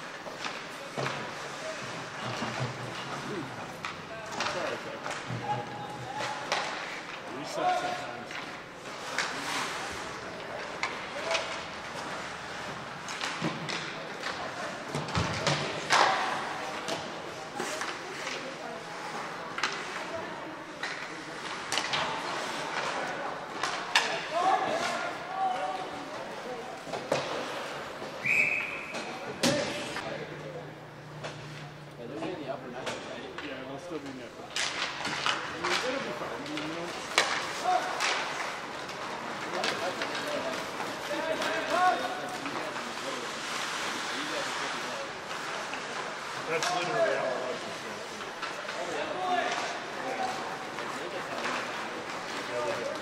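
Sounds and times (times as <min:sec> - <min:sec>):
hockey sticks and puck knocking: 0:00.1 - 0:09.5, 0:10.5 - 0:12.3, 0:12.9 - 0:18.6, 0:19.5 - 0:20.1, 0:20.8 - 0:28.2, 0:32.8 - 0:43.0
referee whistle: 0:28.2 - 0:29.1.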